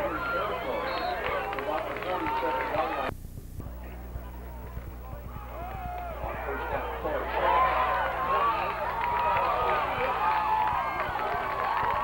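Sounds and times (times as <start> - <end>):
crowd shouting and cheering: 0.0 - 3.1, 4.2 - 12.0
steady low hum: 0.0 - 12.0.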